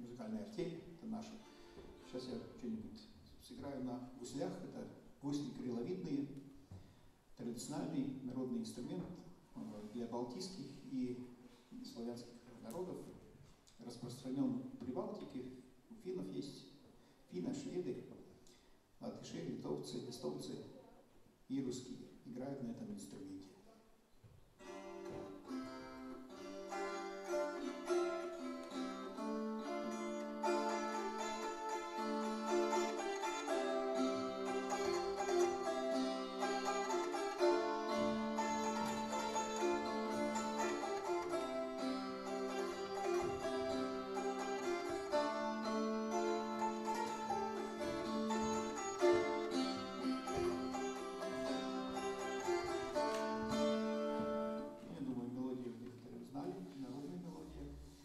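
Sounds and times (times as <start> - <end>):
plucked psaltery tune: 24.6 - 54.8.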